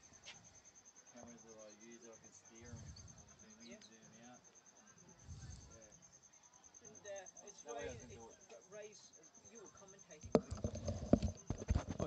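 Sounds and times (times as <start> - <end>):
irregular knocks and clicks: 10.2 - 12.0.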